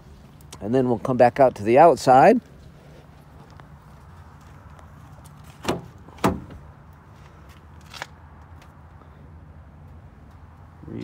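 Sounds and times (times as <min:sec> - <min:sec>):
truck door clunks: 0:05.5 - 0:06.7.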